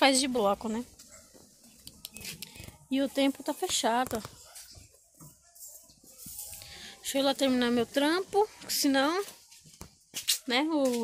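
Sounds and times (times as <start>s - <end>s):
woman speaking: 0.0s - 0.9s, 2.8s - 4.3s, 6.9s - 9.3s, 10.5s - 11.0s
faint outdoor background noise: 0.0s - 11.0s.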